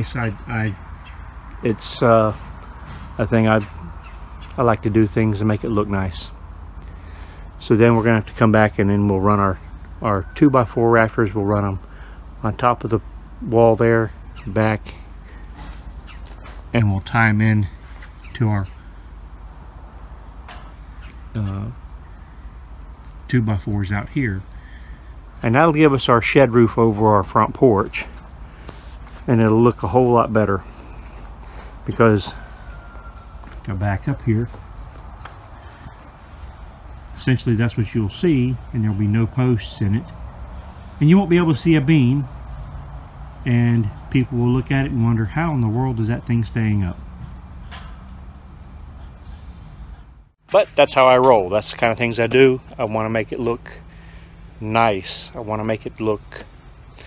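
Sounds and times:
insect chorus: 0:00.0 - 0:57.0
low rumble with light hiss: 0:00.0 - 0:57.0.

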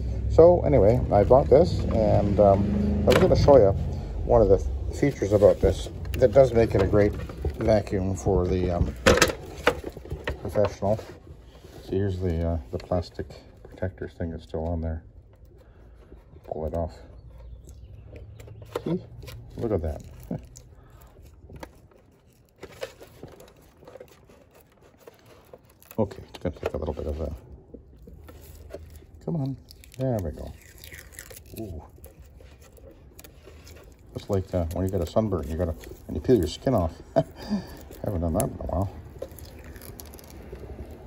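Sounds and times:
plastic film peeling crackles: 0:05.0 - 0:41.0.

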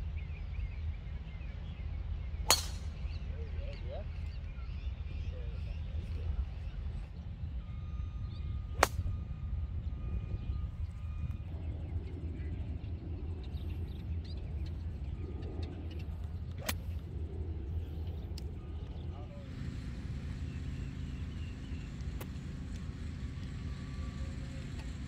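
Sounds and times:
steady low rumble: 0:00.0 - 0:25.0
golf club striking ball: 0:02.5 - 0:03.0, 0:08.7 - 0:09.1, 0:16.6 - 0:17.0.

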